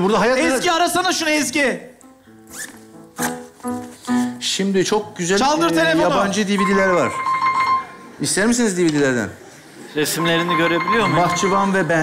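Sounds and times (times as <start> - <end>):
piano playing held notes: 2.0 - 8.2, 10.0 - 12.0
zipper being pulled open: 2.5 - 3.5.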